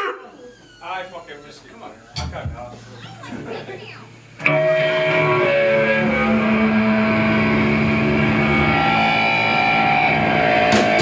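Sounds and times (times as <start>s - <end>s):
guitar feedback tones: 2.2s - 11.0s
distorted electric guitar chord: 4.1s - 11.0s.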